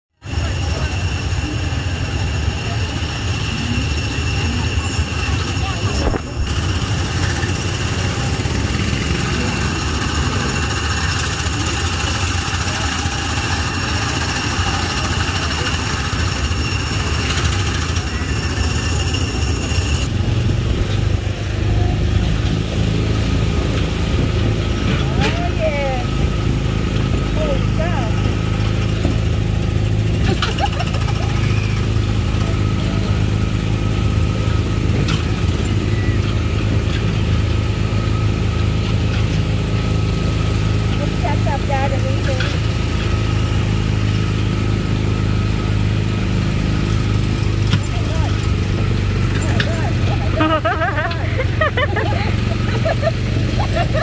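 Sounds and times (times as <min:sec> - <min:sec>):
small petrol engine cars: 0:00.1 - 0:54.0.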